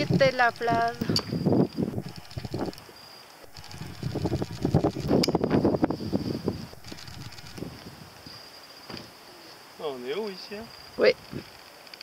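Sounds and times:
wind gusting on microphone: 0:00.0 - 0:09.2, 0:10.7 - 0:11.7
high insect trill: 0:00.0 - 0:12.0.

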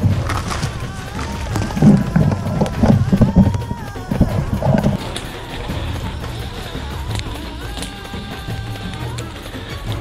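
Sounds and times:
footsteps on leaf litter: 0:00.0 - 0:05.3.

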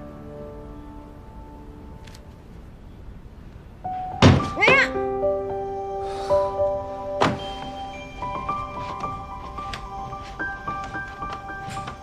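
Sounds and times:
light music: 0:03.8 - 0:12.0.

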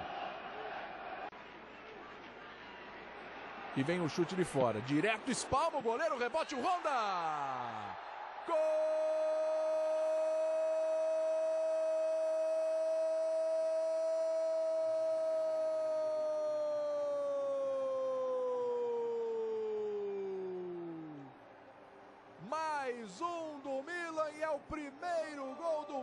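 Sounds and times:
commentator's drawn-out goal cry: 0:03.8 - 0:21.3.

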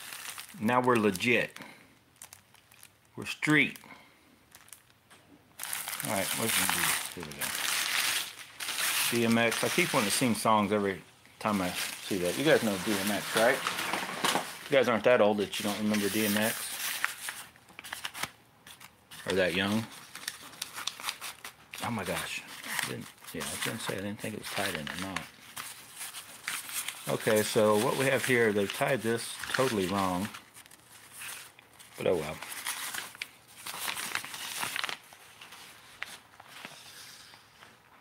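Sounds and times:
cloth sleeve rustling and crinkling: 0:05.6 - 0:38.0
cloth sleeve rustling: 0:11.4 - 0:15.0.

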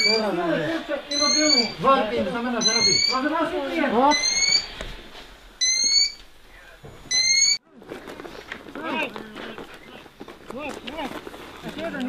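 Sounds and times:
electronic alarm beeping: 0:00.0 - 0:00.4, 0:01.1 - 0:01.9, 0:02.5 - 0:03.4, 0:04.1 - 0:04.7, 0:05.6 - 0:06.2, 0:07.0 - 0:07.6
voices talking: 0:00.0 - 0:04.8, 0:05.6 - 0:12.0.

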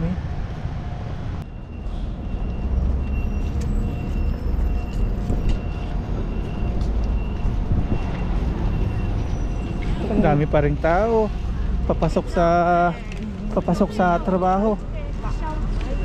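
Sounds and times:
city street traffic: 0:00.0 - 0:16.0.

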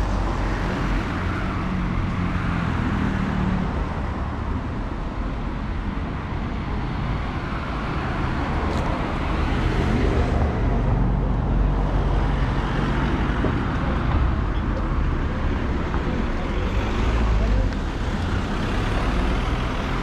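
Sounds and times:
street traffic rumble: 0:00.0 - 0:20.0.

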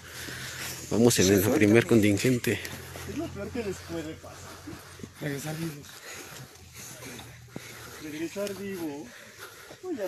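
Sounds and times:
footsteps on dirt path: 0:00.0 - 0:10.0.

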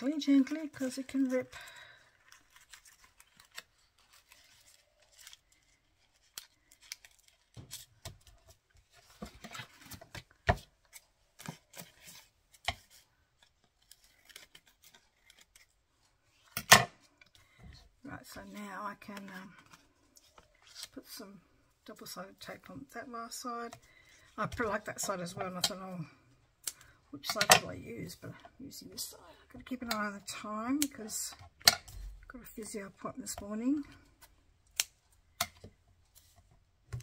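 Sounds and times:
paper rustling: 0:00.0 - 0:17.6.

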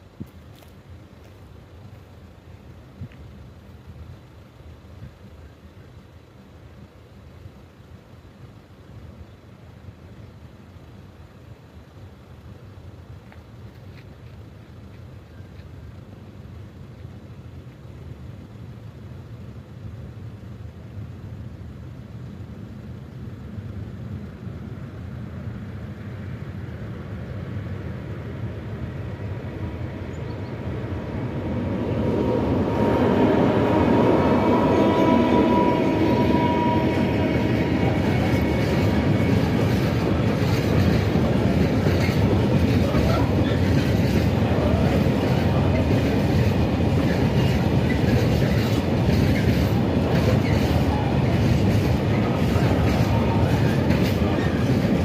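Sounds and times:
diesel locomotives passing: 0:00.0 - 0:55.0
train wheels clicking over rail joints: 0:30.9 - 0:55.0
held horn tone: 0:32.1 - 0:40.1.

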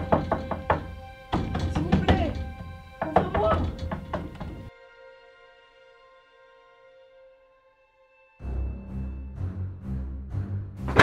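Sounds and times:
pounding on wooden door: 0:00.0 - 0:04.7.

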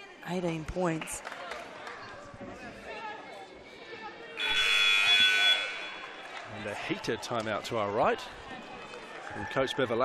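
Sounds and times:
crowd chatter: 0:00.0 - 0:10.0
arena game horn buzzing: 0:04.4 - 0:06.0.

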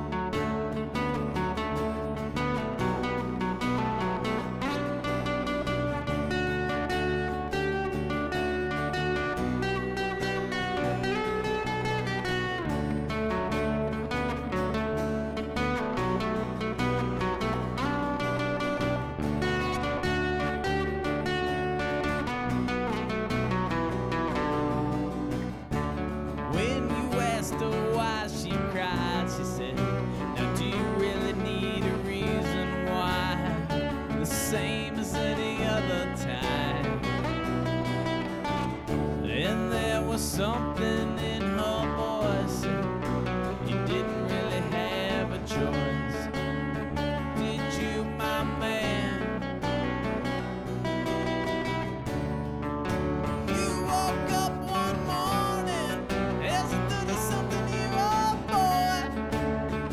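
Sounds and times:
acoustic guitars strummed: 0:00.0 - 0:59.9
bass guitar: 0:00.0 - 0:59.9.

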